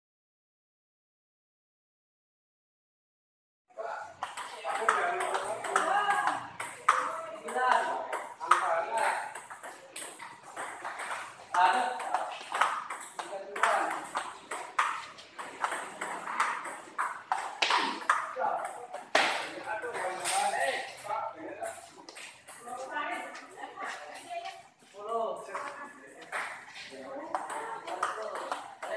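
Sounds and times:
people talking in background: 0:03.8 - 0:28.9.

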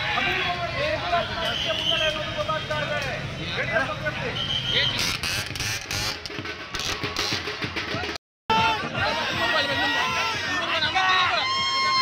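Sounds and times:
music with fast drumbeat: 0:05.0 - 0:12.0
crowd noise: 0:06.4 - 0:12.0
crowd shouting: 0:08.0 - 0:12.0.

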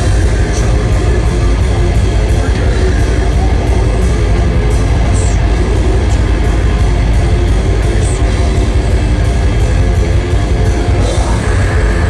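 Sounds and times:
death metal band playing: 0:00.0 - 0:12.0.

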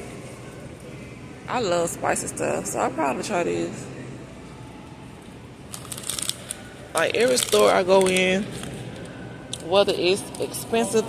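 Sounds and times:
plastic bag crinkling: 0:05.7 - 0:08.8.

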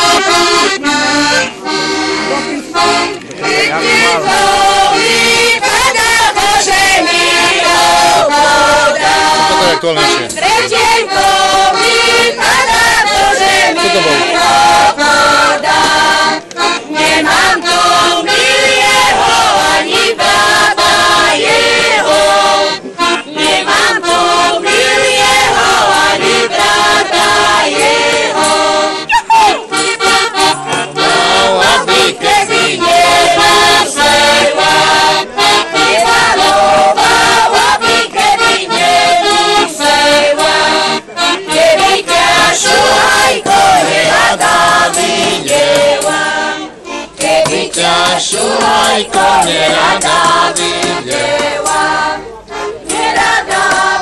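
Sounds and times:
button accordion: 0:00.0 - 0:54.0
group singing folk song unaccompanied: 0:00.0 - 0:54.0.

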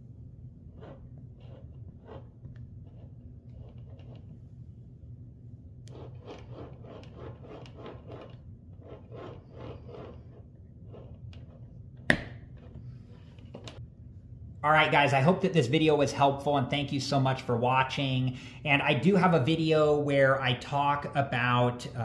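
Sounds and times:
rubbing and scraping of plastic: 0:00.7 - 0:04.4, 0:05.9 - 0:11.7.

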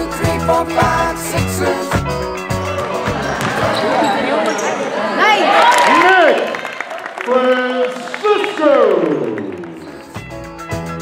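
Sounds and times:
backing music: 0:00.0 - 0:04.0, 0:09.6 - 0:11.0
players and spectators voices: 0:02.4 - 0:10.3
sneakers squeaking on court: 0:02.6 - 0:05.0
basketball bouncing: 0:02.8 - 0:04.7.

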